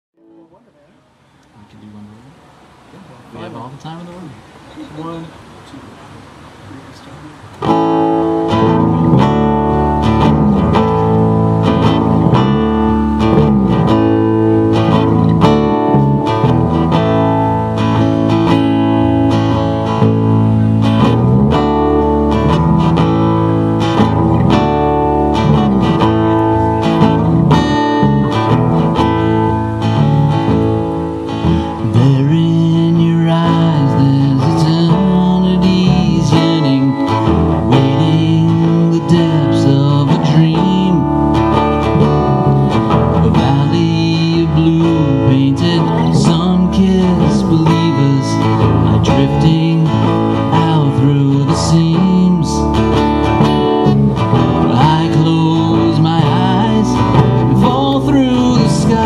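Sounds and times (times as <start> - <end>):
acoustic guitar strumming: 0.2 - 1.4, 7.3 - 59.0
electric guitar: 7.4 - 59.0.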